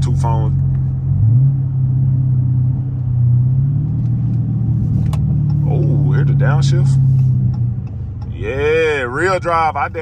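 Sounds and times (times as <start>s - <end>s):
car engine droning: 0.0s - 10.0s.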